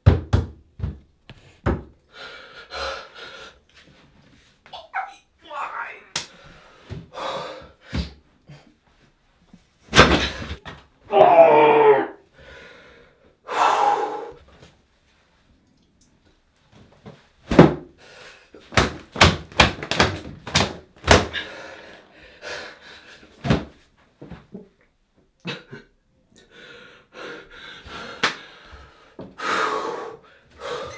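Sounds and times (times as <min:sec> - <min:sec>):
fists thumping on a door: 0:00.0 - 0:01.0
man's strained cry: 0:11.1 - 0:12.2.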